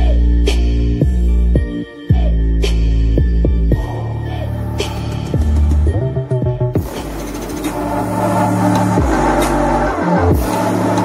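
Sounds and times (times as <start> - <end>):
electronic music with deep bass: 0.0 - 11.0.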